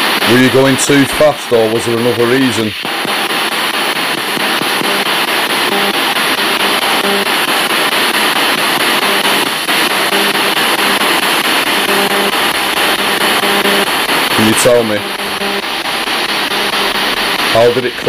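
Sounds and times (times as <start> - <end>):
radio static hiss: 0.0 - 18.0
snatches of radio sound: 0.0 - 18.0.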